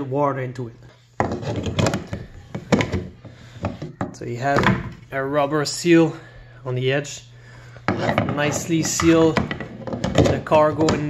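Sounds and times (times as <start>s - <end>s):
plastic scraping: 1.2s - 5.1s, 7.9s - 11.0s
hollow plastic knocks: 9.0s - 11.0s.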